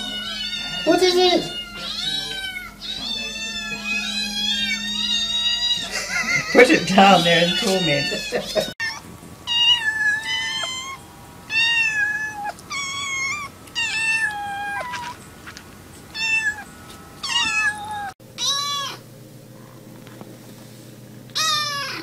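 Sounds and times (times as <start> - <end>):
kittens meowing: 0.0 - 19.0, 21.4 - 22.0.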